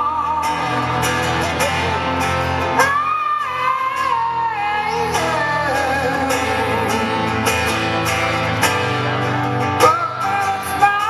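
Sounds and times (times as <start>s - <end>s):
man singing: 0.0s - 8.6s, 9.7s - 11.0s
strummed acoustic guitar: 0.0s - 11.0s.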